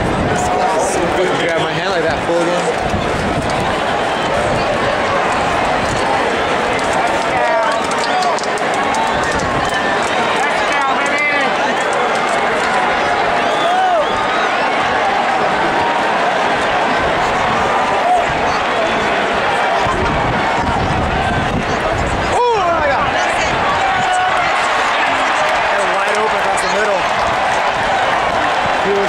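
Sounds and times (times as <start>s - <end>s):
crowd voices talking and calling: 0.0s - 29.0s
loud shouts: 0.0s - 29.0s.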